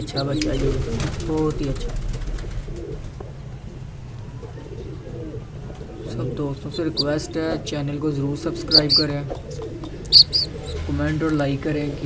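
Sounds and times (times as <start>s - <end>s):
pigeons cooing: 0.0s - 10.9s
steady low hum: 0.0s - 12.0s.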